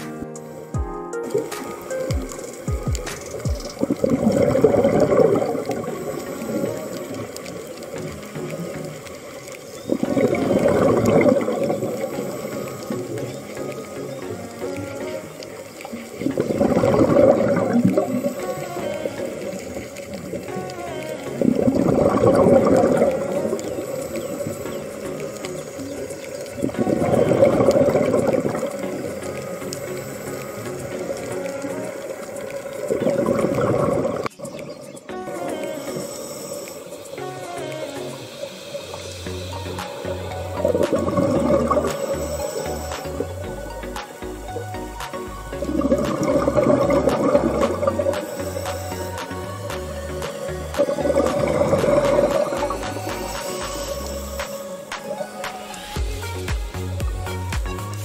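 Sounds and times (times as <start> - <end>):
background music: 0.0 - 58.0
exhaled bubbles underwater: 1.2 - 58.0.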